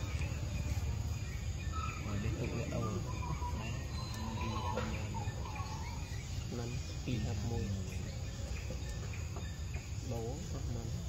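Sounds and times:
insect chorus: 0.0 - 11.0.

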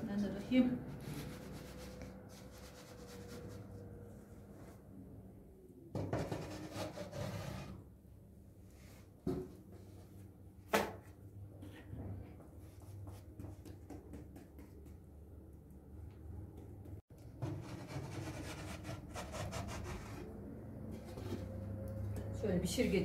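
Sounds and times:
dough rubbing and tapping: 12.4 - 15.6.

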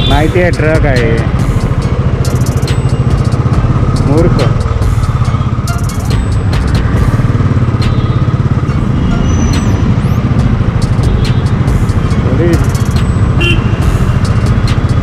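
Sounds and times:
motorcycle engine pulsing: 0.0 - 15.0.

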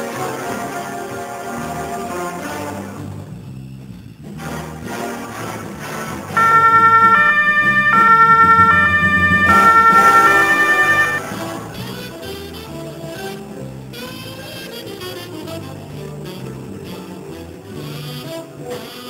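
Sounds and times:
background music: 5.7 - 19.0
two-tone police siren: 6.4 - 11.5.

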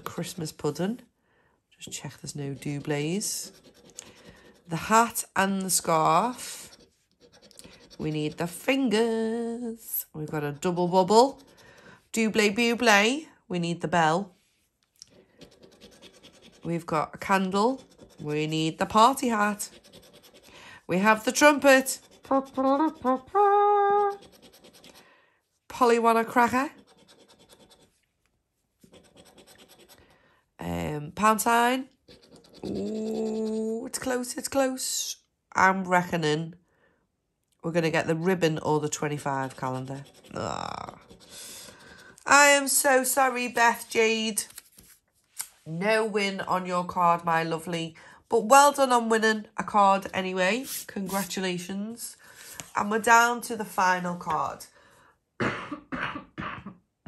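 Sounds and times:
scraping scratch card: 2.3 - 8.6, 15.0 - 25.1, 26.2 - 28.0, 28.8 - 30.2, 31.9 - 33.8, 39.1 - 42.3
woman coughing: 55.4 - 56.8.

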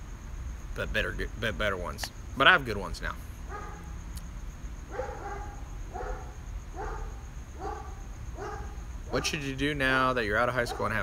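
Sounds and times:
dog barking: 3.5 - 3.9, 4.9 - 9.4, 10.6 - 11.0.

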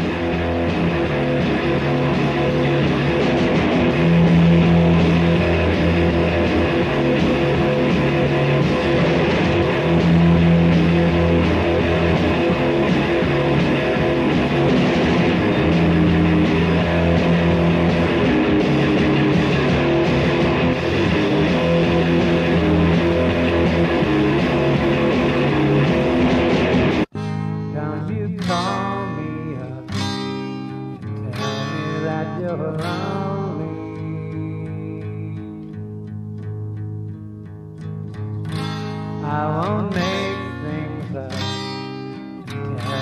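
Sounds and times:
low bass figure: 0.0 - 28.3
lo-fi rock band playing: 0.0 - 43.0.

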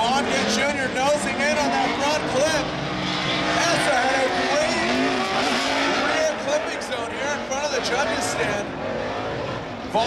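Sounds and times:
car engines revving: 0.0 - 10.0
tires squealing: 0.0 - 10.0.

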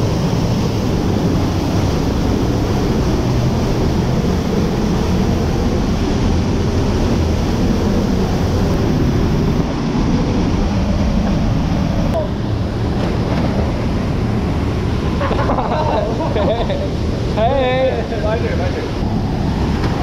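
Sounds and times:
waterfall rushing into pool: 0.0 - 20.0.

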